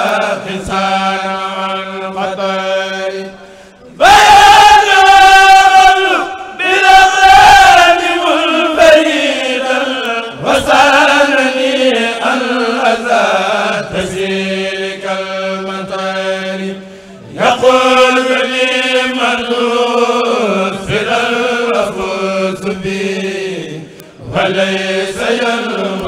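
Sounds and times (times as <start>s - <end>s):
person chanting religious poem: 0.0s - 26.0s.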